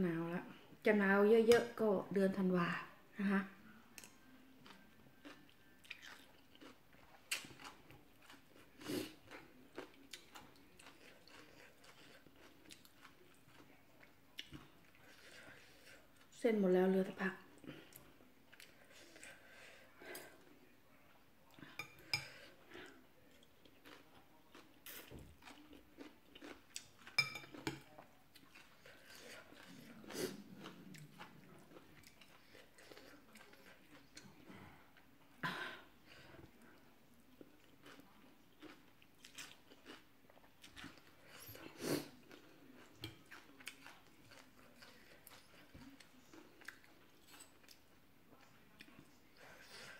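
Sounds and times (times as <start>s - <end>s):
chewing and slurping noodles: 4.6s - 16.3s, 23.2s - 34.6s, 37.5s - 47.8s
cutlery clinking against glass bowl: 27.1s - 27.9s.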